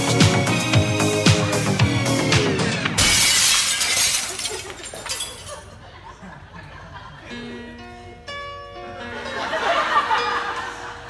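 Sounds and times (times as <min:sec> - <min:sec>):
upbeat dance music: 0:00.0 - 0:03.0
glass shattering: 0:03.0 - 0:05.7.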